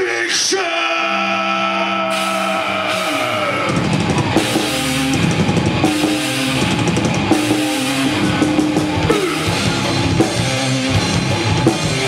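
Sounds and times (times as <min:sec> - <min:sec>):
heavy metal band sustained chord: 0:01.0 - 0:12.0.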